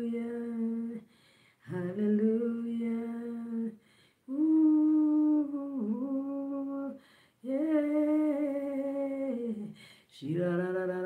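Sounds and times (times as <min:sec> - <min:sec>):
breath: 0:01.0 - 0:01.6, 0:03.8 - 0:04.2, 0:07.0 - 0:07.4, 0:09.7 - 0:10.1.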